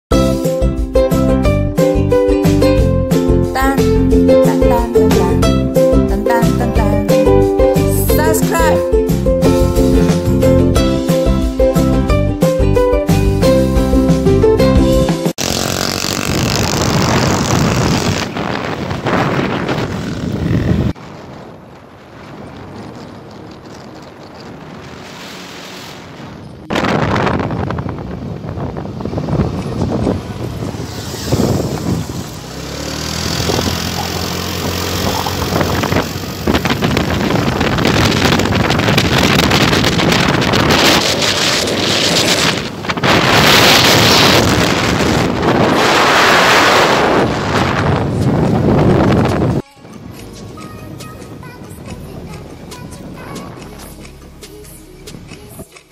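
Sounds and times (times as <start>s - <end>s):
music: 0.1s - 15.4s, 49.4s - 55.9s
vehicle engine and road noise: 13.1s - 55.9s
wind on microphone: 15.4s - 53.9s.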